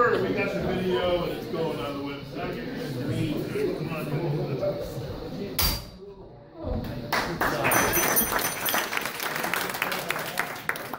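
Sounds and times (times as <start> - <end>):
voices in a hall: 0.0 - 10.9
sharp knock: 5.6 - 6.0
audience applauding: 7.1 - 10.9.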